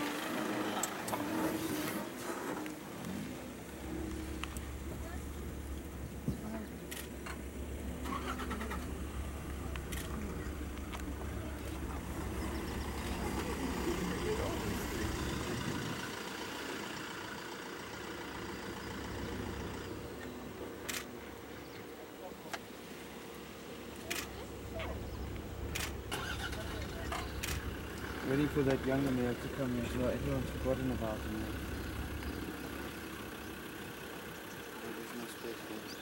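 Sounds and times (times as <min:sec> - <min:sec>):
car engine at low revs: 0:00.0 - 0:36.0.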